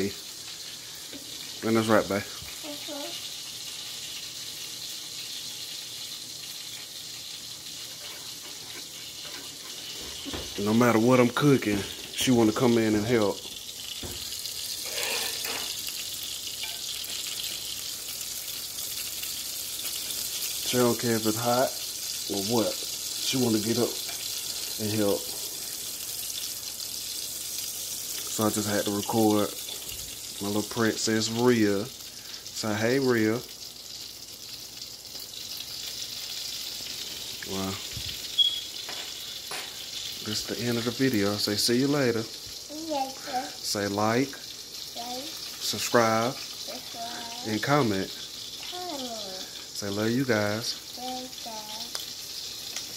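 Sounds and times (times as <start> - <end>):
eggs sizzling in a pan: 0.0 - 52.9
steady high hiss: 35.7 - 52.9.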